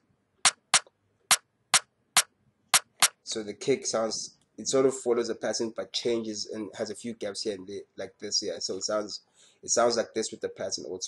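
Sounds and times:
crisp high percussion hits: 0.5 - 0.8, 2.8 - 3.1.

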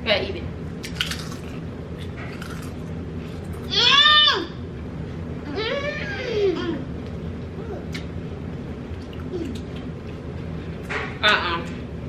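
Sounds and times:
potato chips crunching: 0.8 - 3.7
high-pitched wordless vocal cry: 3.7 - 4.6.

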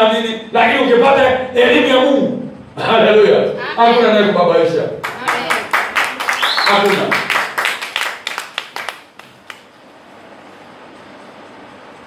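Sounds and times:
faint room noise hiss: 0.0 - 12.0
congregation clapping in rhythm: 5.0 - 9.7.

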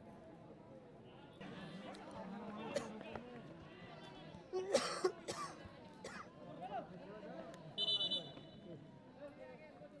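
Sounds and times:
crowd background noise: 0.0 - 10.0.

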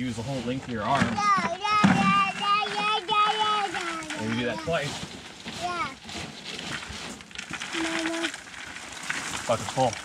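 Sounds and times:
wood chips rustling: 0.0 - 10.0.

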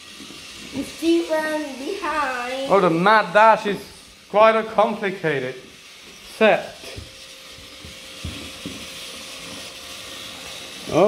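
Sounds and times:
thin motor whine: 0.0 - 11.0
toy train motors whirring: 0.0 - 11.0.

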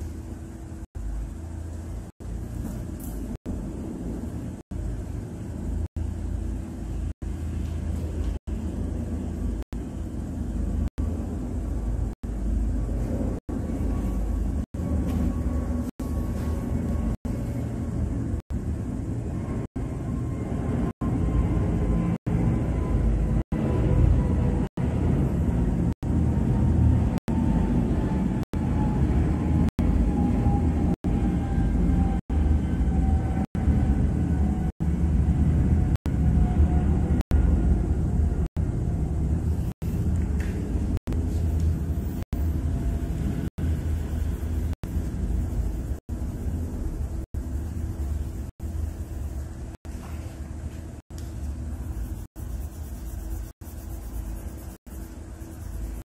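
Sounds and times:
steady low rumble: 0.0 - 56.0.

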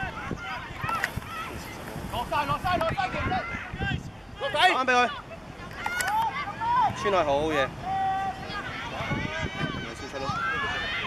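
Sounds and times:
people shouting: 0.0 - 7.1, 7.8 - 11.0.

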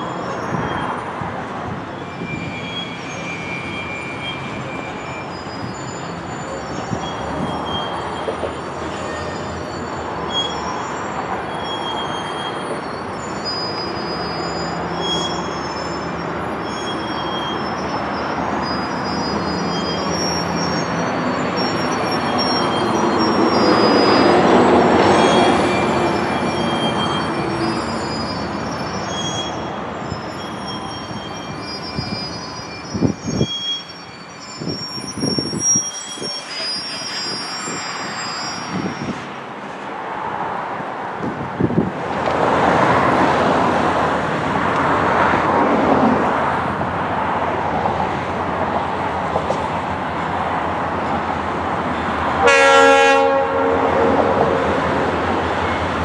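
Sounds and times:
wheel flanges squealing: 0.0 - 40.4, 53.7 - 56.0
freight cars rolling on rails: 0.0 - 56.0.

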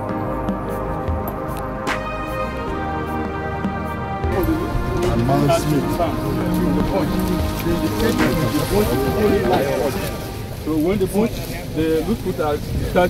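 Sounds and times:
background music: 0.0 - 11.9
people talking at once: 4.2 - 13.0.

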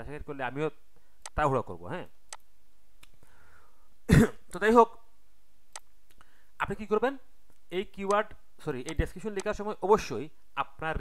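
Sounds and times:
person speaking: 0.0 - 2.2, 6.6 - 11.0
faint sharp clicks: 5.7 - 6.3.

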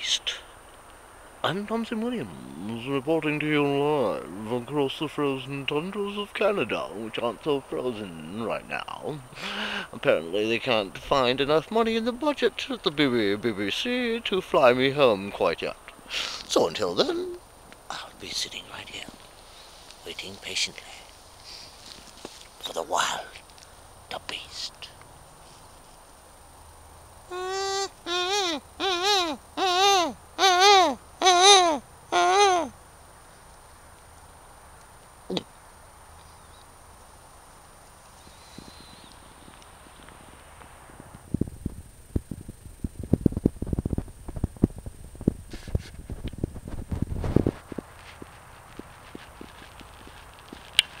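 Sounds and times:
person calling drawn-out notes: 17.0 - 17.4, 27.3 - 32.7
footsteps on leaf litter: 21.2 - 22.6, 47.1 - 51.0.

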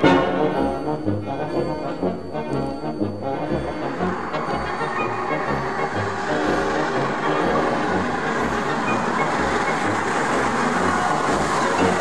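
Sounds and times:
steam locomotive running at speed: 0.0 - 12.0.

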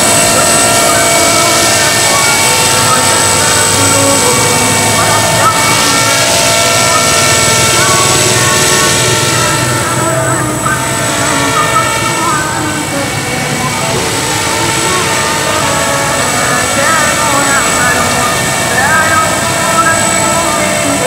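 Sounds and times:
rc helicopter motor whine: 0.0 - 21.0.

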